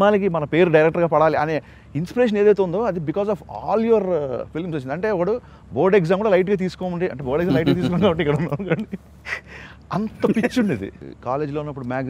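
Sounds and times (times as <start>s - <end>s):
man speaking: 7.2s - 8.5s, 9.9s - 11.0s
man drawing a sharp breath: 9.1s - 9.8s.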